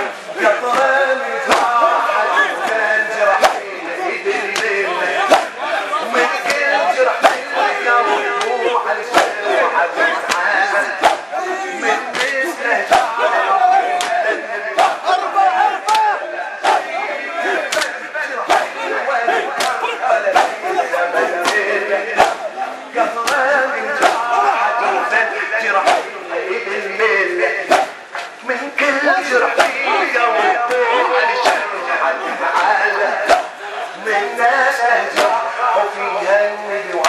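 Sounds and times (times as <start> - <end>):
crowd of men chanting: 0.0 - 37.0
man chanting into a microphone: 0.0 - 37.0
chest-beating slaps: 1.5 - 1.7, 3.4 - 3.7, 4.5 - 5.6, 6.5 - 7.5, 9.1 - 9.4, 10.3 - 11.3, 12.1 - 13.1, 17.7 - 18.8, 19.6 - 20.6, 21.4 - 22.5, 23.2 - 24.3, 25.8 - 26.2, 27.7 - 28.3, 29.5 - 29.8, 33.2 - 33.6, 35.2 - 35.4.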